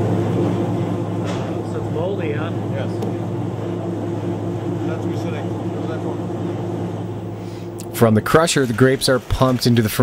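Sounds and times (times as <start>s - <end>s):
machinery humming: 0.0s - 10.0s.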